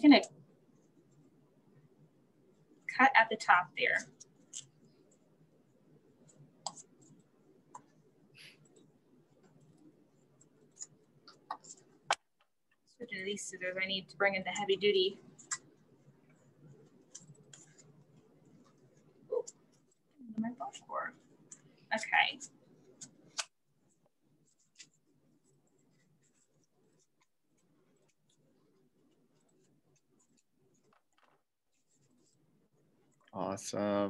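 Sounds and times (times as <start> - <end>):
scratchy rustling of yarn: 13.0 - 33.3.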